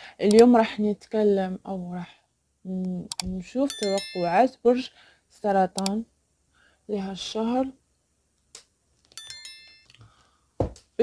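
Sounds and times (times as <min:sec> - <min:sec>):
small metallic chime: 0:03.7 - 0:04.5, 0:09.2 - 0:10.0.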